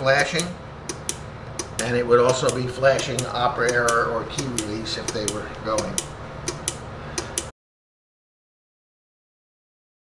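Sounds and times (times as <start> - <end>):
low room hum: 0.0 - 7.5
sharp clicks in pairs: 0.4 - 7.5.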